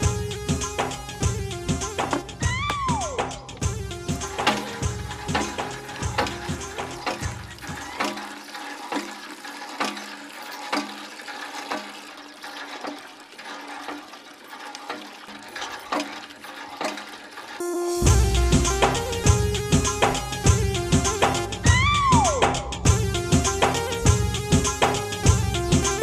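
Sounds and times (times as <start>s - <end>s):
background music: 0.0s - 8.5s, 17.6s - 26.0s
water pouring into plastic bucket: 2.4s - 17.7s.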